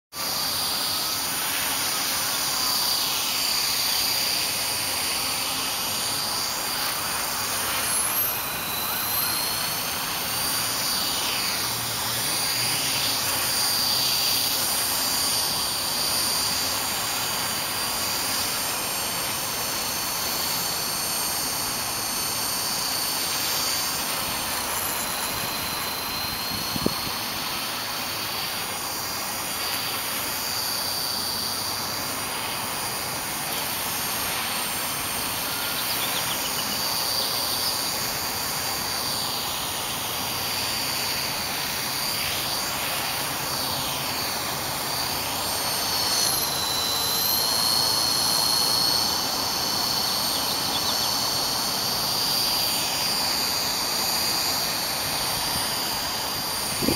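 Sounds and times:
rc helicopter motor whine: 0.1s - 56.9s.

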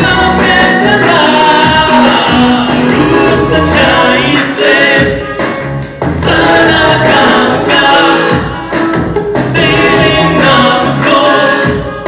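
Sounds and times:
man singing worship song: 0.0s - 5.2s, 6.2s - 8.6s, 9.6s - 11.8s.

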